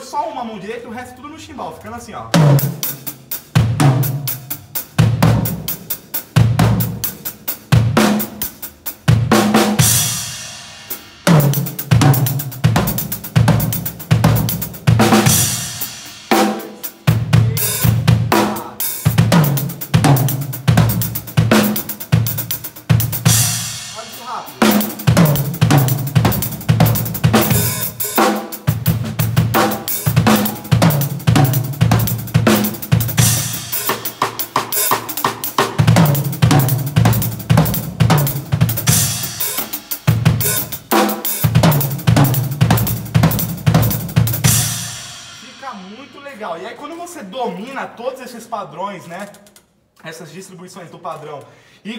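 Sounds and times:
fast drum kit playing: 0.0 - 47.8.

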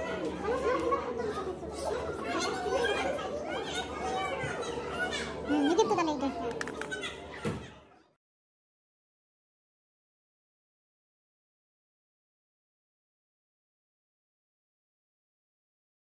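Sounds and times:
chatter of children and adults: 0.0 - 8.2
clicks: 6.5 - 7.0.

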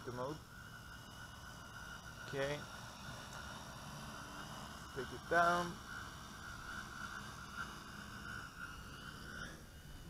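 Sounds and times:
quadcopter hovering hum: 0.0 - 10.0.

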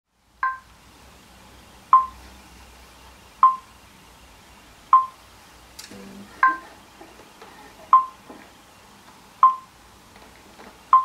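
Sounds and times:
faint low hum: 0.2 - 11.0.

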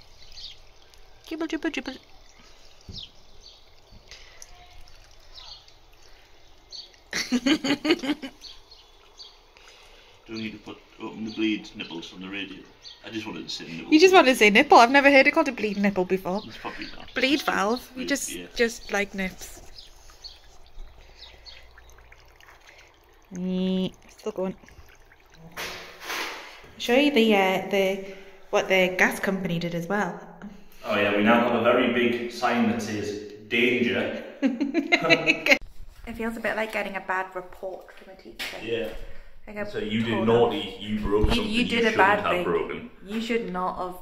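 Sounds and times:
faint bird chirps: 0.0 - 13.4, 15.4 - 24.3
faint water trickling from pipe: 0.0 - 29.8.

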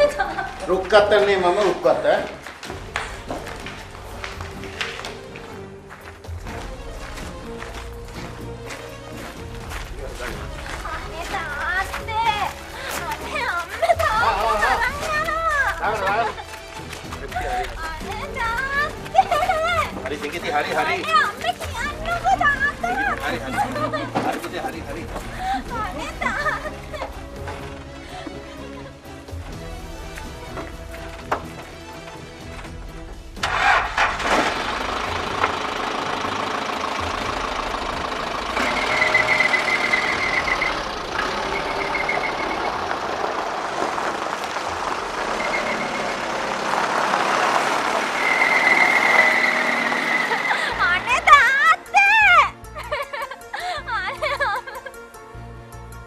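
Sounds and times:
car engine starting and running: 0.0 - 53.0
background music: 0.0 - 56.0
people talking: 17.3 - 26.7, 50.6 - 52.5.

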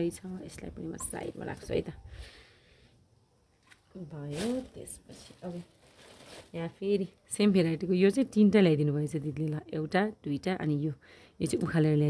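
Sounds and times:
woman speaking: 0.0 - 2.1, 3.9 - 5.7, 6.5 - 12.0
plastic bag crinkling: 4.2 - 7.2.

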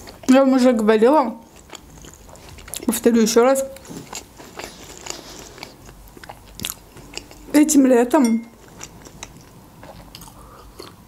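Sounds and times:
person chewing with mouth clicks: 1.4 - 3.0, 3.6 - 7.6, 8.5 - 11.0.

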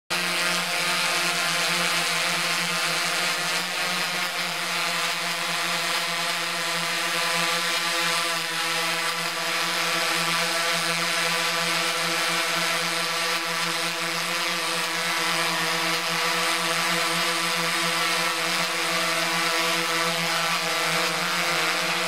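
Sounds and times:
drone motors buzzing: 0.1 - 22.0.

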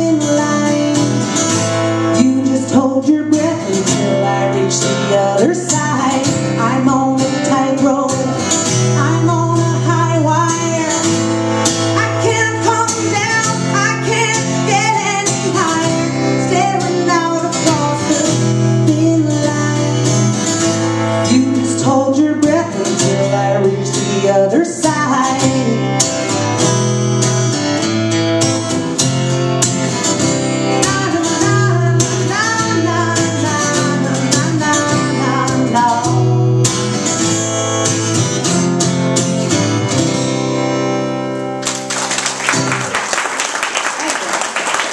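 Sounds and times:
woman singing: 0.0 - 1.4, 2.0 - 20.5, 21.2 - 26.2, 30.6 - 36.7
acoustic guitar strumming: 0.0 - 43.0.

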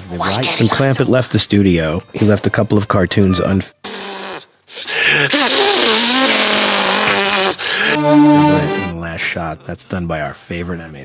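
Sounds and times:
short laugh: 4.7 - 8.0
cartoon noise with pitched note: 5.4 - 8.9.

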